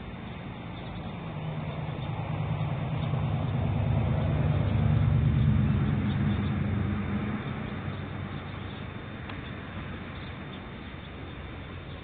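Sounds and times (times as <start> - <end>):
vehicle engine passing by: 0.6 - 12.0.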